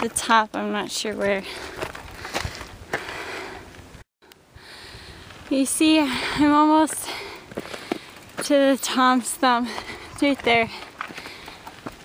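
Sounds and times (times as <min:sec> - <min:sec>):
footsteps crunching on gravel: 0:00.1 - 0:03.2, 0:06.8 - 0:12.0
person breathing: 0:01.4 - 0:03.8, 0:04.5 - 0:05.4, 0:06.0 - 0:08.3, 0:09.7 - 0:11.7.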